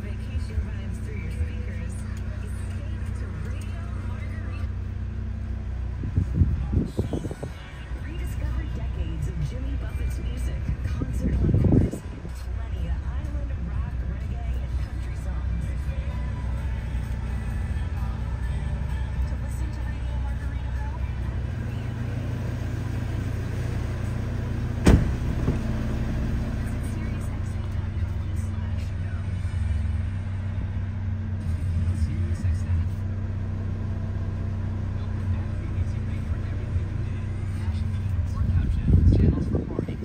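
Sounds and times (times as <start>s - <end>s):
car engine idling: 0.0s - 40.0s
sharp thump: 24.8s - 25.7s.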